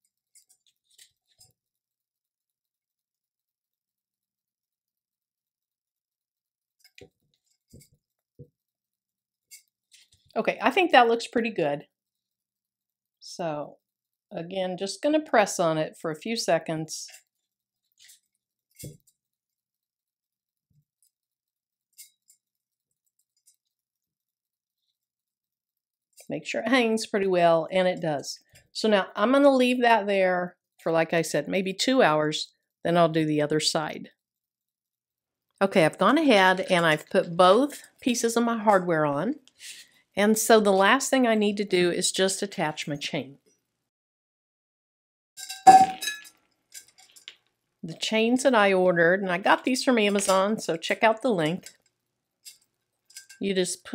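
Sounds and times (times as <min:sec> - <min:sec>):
metal tumbler ringing clang: 0:45.4 - 0:46.3
metal chain and tumbler clinking: 0:52.4 - 0:53.5.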